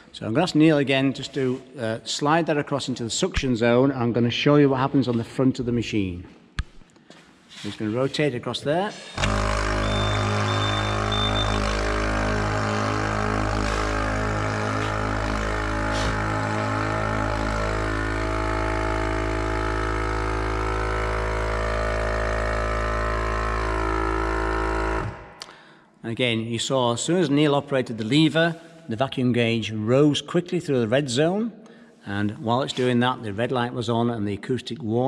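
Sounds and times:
vacuum pumps running: 0:09.1 - 0:25.4
acoustic warning signal: 0:09.2 - 0:17.6.

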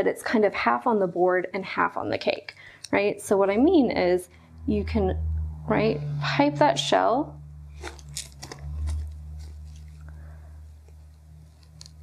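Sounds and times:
steady low hum: 0:02.5 - 0:12.0
plastic piping bag crinkling: 0:07.7 - 0:12.0.

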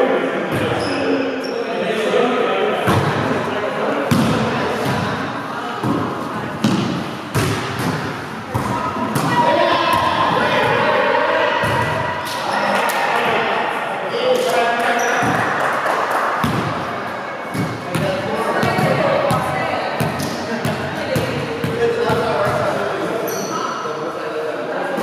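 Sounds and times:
players' voices echoing: 0:00.0 - 0:25.0.

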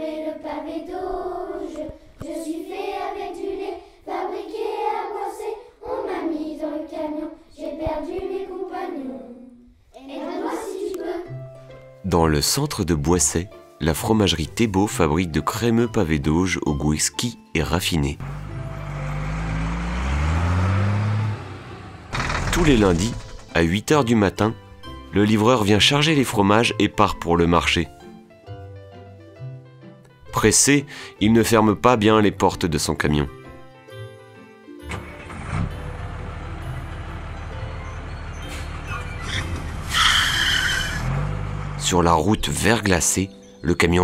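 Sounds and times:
truck engine speeding up: 0:18.2 - 0:23.6, 0:34.9 - 0:42.1.

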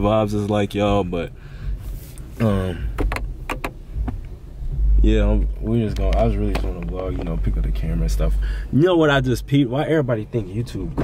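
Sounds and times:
low rumble in car cabin: 0:00.0 - 0:11.0.

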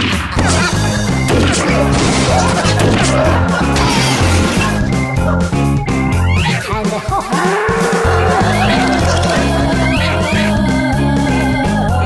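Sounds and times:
background music with bass line: 0:00.0 - 0:12.0.

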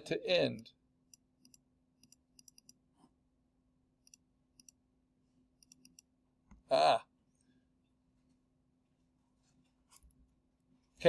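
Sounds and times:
computer mouse clicking: 0:01.1 - 0:02.8, 0:04.0 - 0:04.8, 0:05.6 - 0:06.1.

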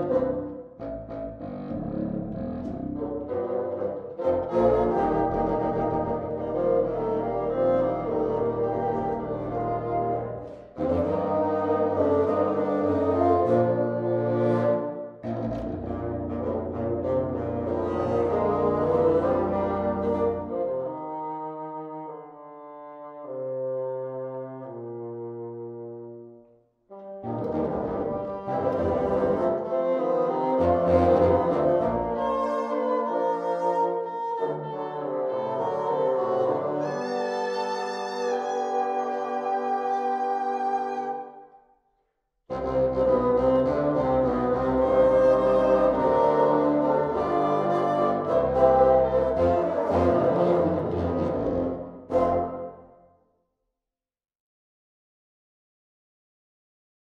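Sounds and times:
bassoon ensemble playing: 0:00.0 - 0:41.4, 0:42.5 - 0:53.1.

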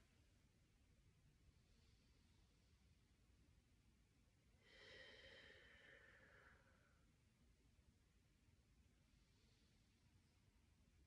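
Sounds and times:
slow breath exhale: 0:04.6 - 0:07.0.

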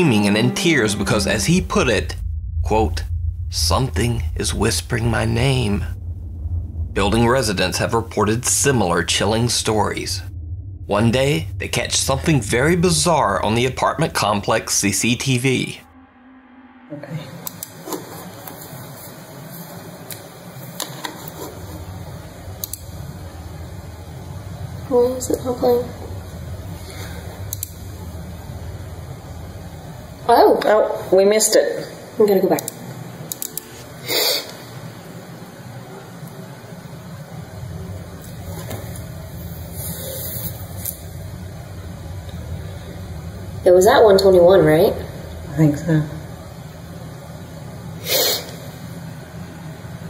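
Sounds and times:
low background hum: 0:00.0 - 0:50.0
low room noise: 0:00.0 - 0:50.0.

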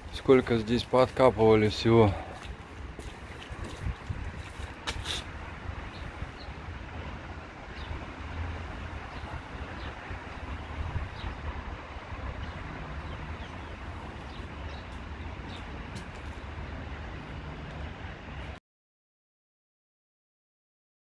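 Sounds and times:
wind buffeting microphone: 0:00.0 - 0:18.6.

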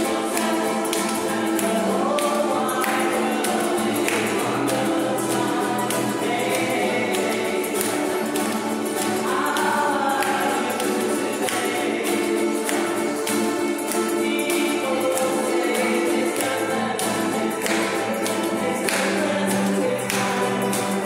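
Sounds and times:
people singing together: 0:00.0 - 0:21.0
strummed ukuleles banjo and guitar: 0:00.0 - 0:21.0.

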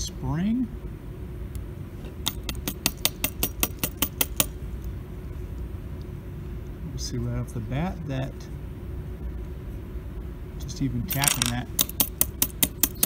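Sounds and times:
low steady hum: 0:00.0 - 0:13.0.

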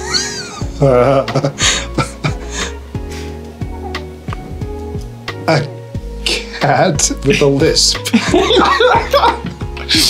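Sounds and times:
men laughing: 0:00.0 - 0:03.4, 0:08.0 - 0:10.0
background music: 0:00.0 - 0:10.0.

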